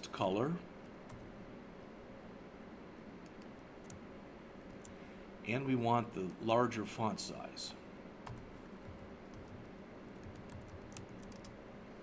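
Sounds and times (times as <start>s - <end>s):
steady low hiss: 0.0s - 12.0s
keyboard typing: 8.2s - 11.6s.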